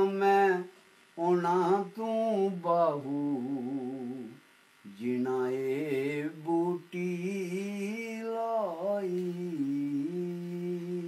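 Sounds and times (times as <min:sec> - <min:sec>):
elderly man singing a long note: 0:01.2 - 0:11.0.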